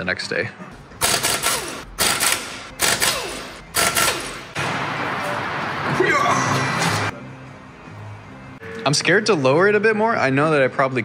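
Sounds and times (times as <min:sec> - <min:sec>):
impact wrench rattling: 0:01.0 - 0:04.6.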